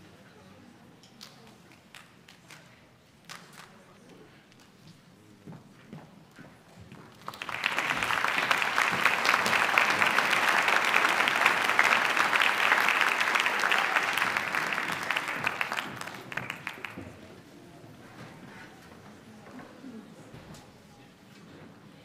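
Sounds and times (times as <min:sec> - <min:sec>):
audience applause: 0:07.2 - 0:17.2.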